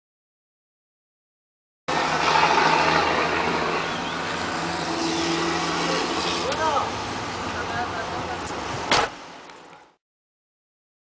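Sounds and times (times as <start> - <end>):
street traffic noise: 1.9 - 10.0.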